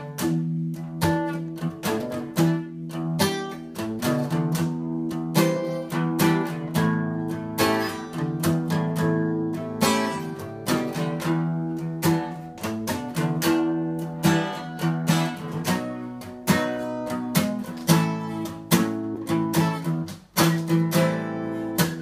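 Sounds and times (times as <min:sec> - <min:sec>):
acoustic guitar strumming chords: 0:00.0 - 0:22.0.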